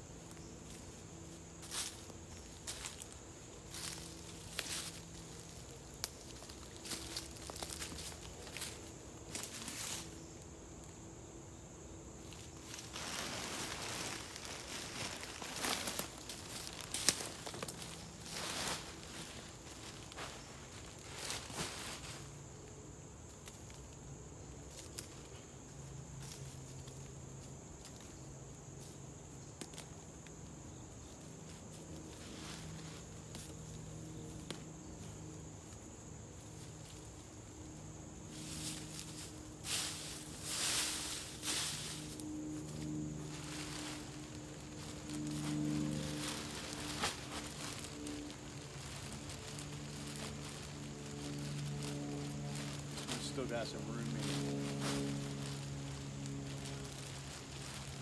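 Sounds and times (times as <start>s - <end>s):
high insect drone: 0.0s - 58.0s
footsteps through dry leaves: 0.1s - 11.0s, 11.8s - 24.0s, 24.6s - 58.0s
plastic bags rustling: 12.4s - 22.3s, 38.3s - 58.0s.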